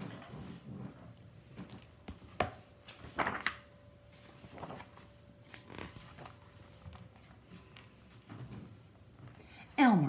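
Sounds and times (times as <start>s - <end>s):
book pages rustling: 0.1s - 9.4s.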